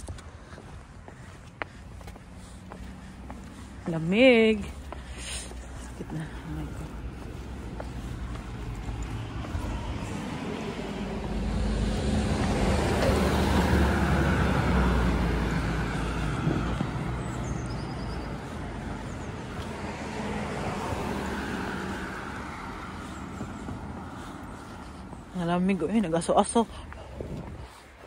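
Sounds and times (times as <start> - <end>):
vehicle driving past: 5.5 - 25.4.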